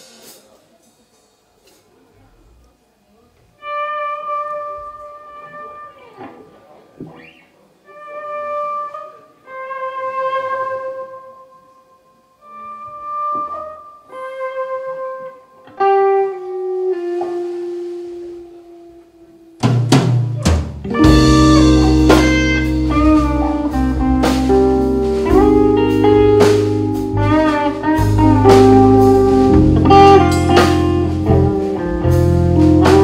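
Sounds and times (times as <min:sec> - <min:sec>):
drum kit: 0:00.0 - 0:02.0, 0:15.8 - 0:18.6, 0:19.6 - 0:33.0
bass guitar: 0:19.6 - 0:33.0
electric guitar sustained notes: 0:20.9 - 0:33.0.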